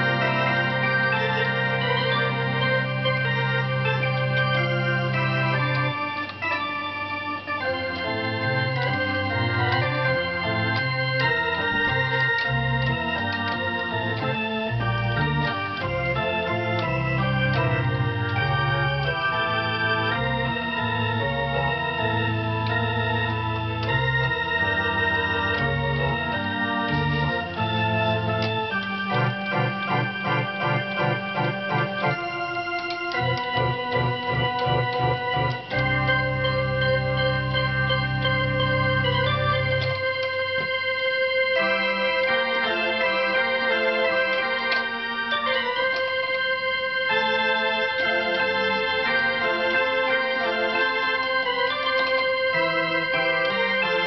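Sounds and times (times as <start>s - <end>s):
organ playing: 0.0s - 54.0s.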